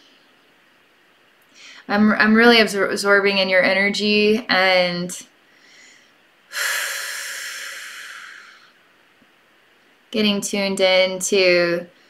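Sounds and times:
woman breathing deeply: 0:01.5 - 0:01.9, 0:05.4 - 0:08.8.

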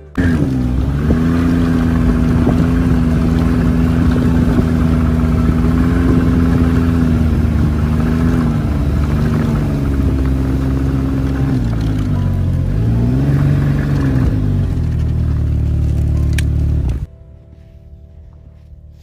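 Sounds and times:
snowmobile engine running: 0:00.0 - 0:17.1.

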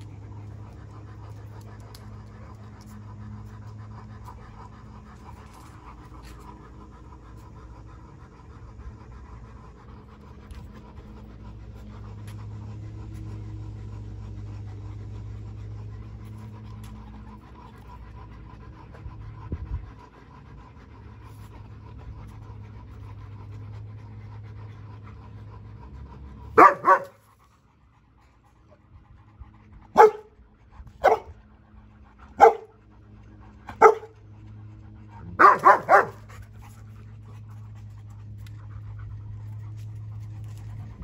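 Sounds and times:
dog barking: 0:26.6 - 0:27.2, 0:30.0 - 0:30.3, 0:31.0 - 0:31.3, 0:32.4 - 0:32.7, 0:33.8 - 0:34.1, 0:35.4 - 0:36.2.

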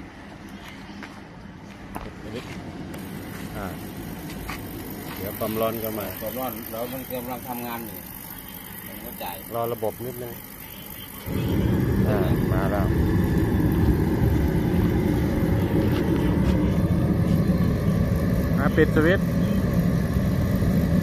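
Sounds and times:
heater burner and fan rushing: 0:00.0 - 0:21.0.

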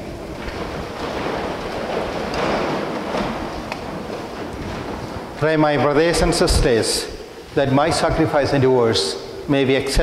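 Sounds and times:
rushing rustling noise: 0:00.0 - 0:08.2.

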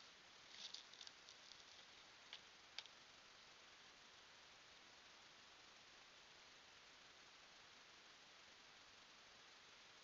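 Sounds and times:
soft light ticks and rustles: 0:00.0 - 0:03.5
faint steady hiss: 0:00.0 - 0:10.0.

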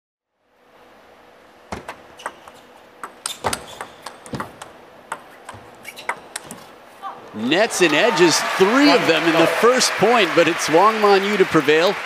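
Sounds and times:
table tennis ball clicking: 0:02.2 - 0:06.6.

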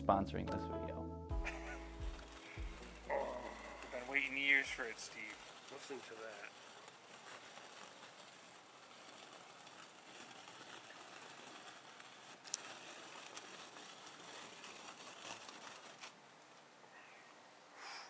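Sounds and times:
chocolate bark crunching under blades: 0:01.5 - 0:16.2.

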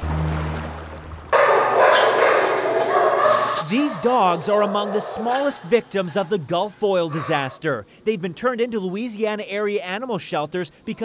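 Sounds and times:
many dogs barking and yipping: 0:01.3 - 0:07.7.

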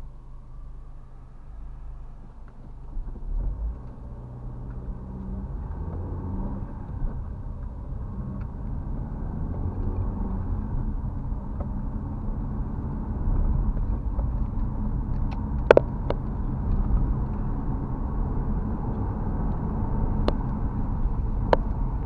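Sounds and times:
car engine accelerating: 0:00.0 - 0:22.0
road noise inside car: 0:00.0 - 0:22.0.

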